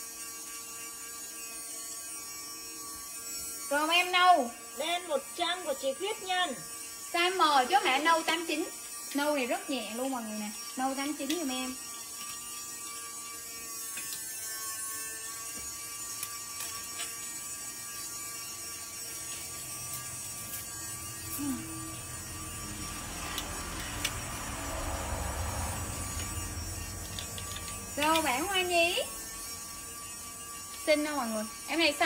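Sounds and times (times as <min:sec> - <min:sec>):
electrical hum: 0:15.3 - 0:32.0.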